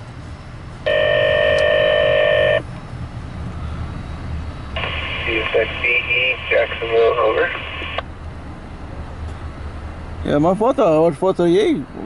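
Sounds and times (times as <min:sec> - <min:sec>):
electronic signalling tone: 0:00.9 - 0:02.7.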